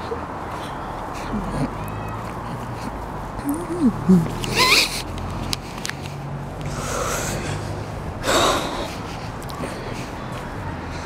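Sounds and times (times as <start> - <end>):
breathy snorts: 6.7 - 9.9.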